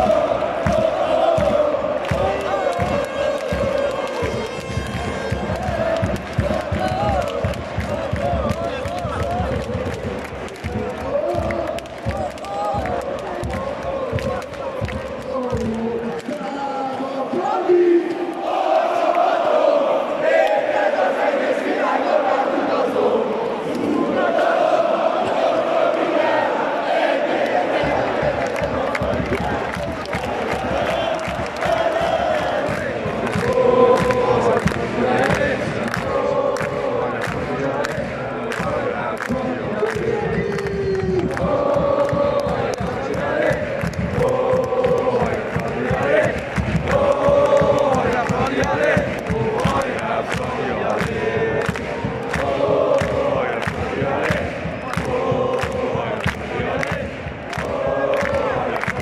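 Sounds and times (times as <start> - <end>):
steady rhythmic beat: 0.0 - 16.2, 27.6 - 59.0
football crowd chanting: 0.0 - 59.0.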